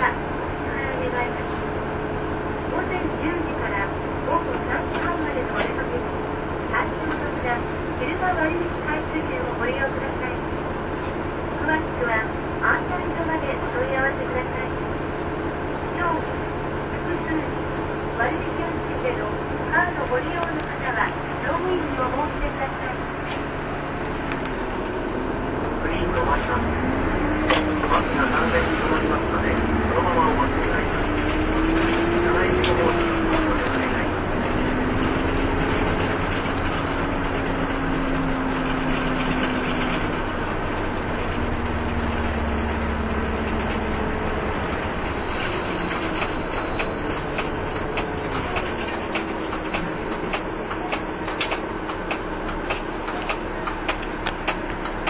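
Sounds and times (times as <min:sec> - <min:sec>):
bus engine: 0:00.0 - 0:55.0
road noise: 0:00.0 - 0:55.0.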